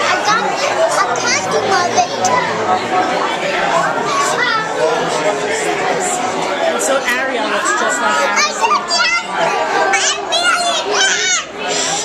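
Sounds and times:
voices chattering and laughing: 0:00.0 - 0:12.0
young girl's high voice: 0:09.9 - 0:11.5.

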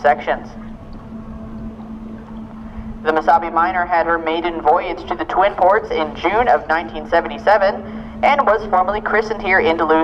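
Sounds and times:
ship diesel engines droning: 0:00.0 - 0:10.0.

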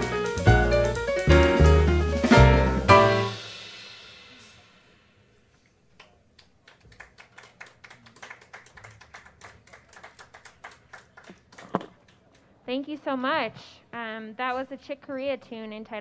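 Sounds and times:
jazz piano trio chord: 0:00.0 - 0:04.5
audience clapping: 0:05.9 - 0:12.4.

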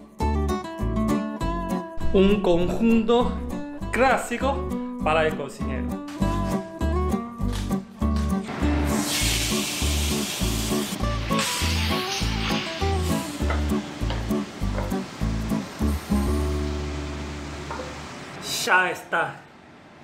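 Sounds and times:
food sizzling in frying pan: 0:08.6 - 0:18.3.

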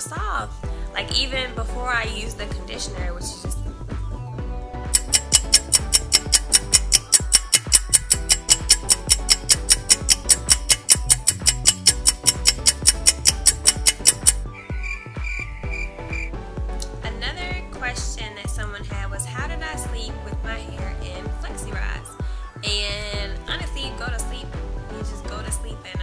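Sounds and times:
background music with steady beat: 0:00.0 - 0:26.0.

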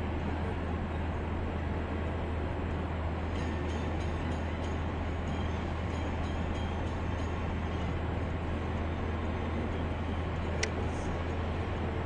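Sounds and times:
car road noise drone: 0:00.0 - 0:12.0.

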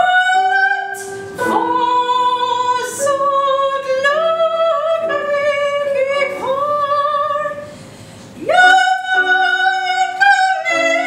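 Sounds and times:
woman singing operatic aria: 0:00.0 - 0:07.7, 0:08.4 - 0:11.0
digital piano: 0:00.0 - 0:11.0.

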